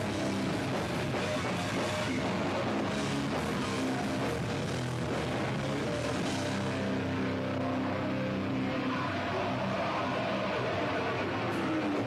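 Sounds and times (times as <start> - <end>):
distorted electric guitars: 0.0 - 12.0
heavy band playing live: 0.0 - 12.0.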